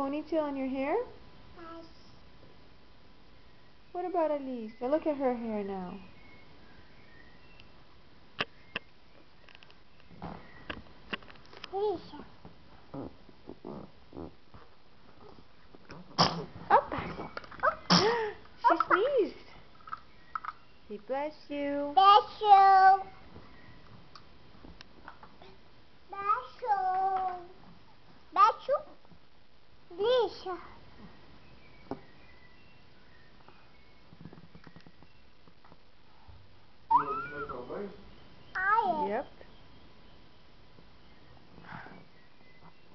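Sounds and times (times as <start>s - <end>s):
baby sneezing: 16.2s - 16.5s, 17.8s - 19.0s
voice squeaks: 36.9s - 37.8s.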